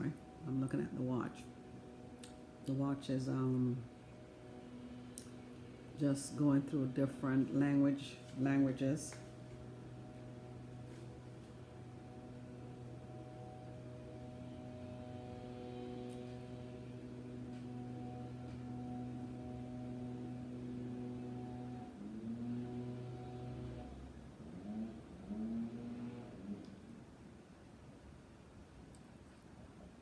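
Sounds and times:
low hum with overtones: 0.0s - 30.0s.

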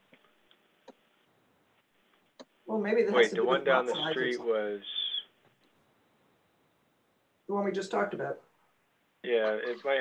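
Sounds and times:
person speaking: 2.4s - 5.3s, 9.2s - 10.0s.

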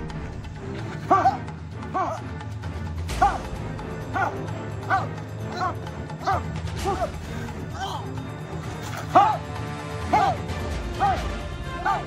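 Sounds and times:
background music with low beat: 0.0s - 12.0s
dog barking: 11.8s - 12.0s.

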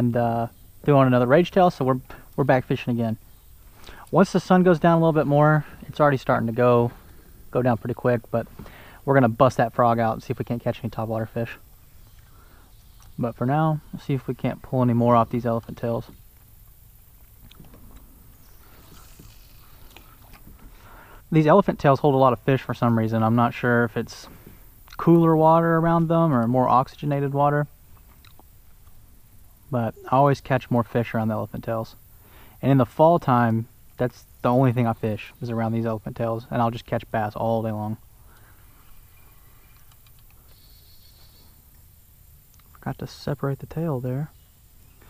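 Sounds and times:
low steady rumble: 0.0s - 45.0s.

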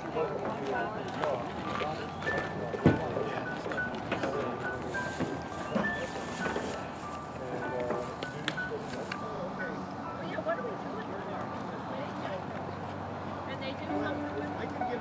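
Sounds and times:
people talking: 0.0s - 12.6s, 13.5s - 15.0s
background music: 13.8s - 15.0s.

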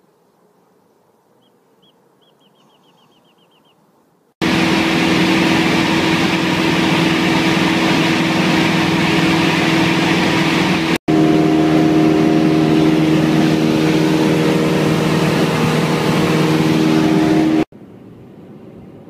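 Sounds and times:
propeller plane engine droning: 4.4s - 19.0s.

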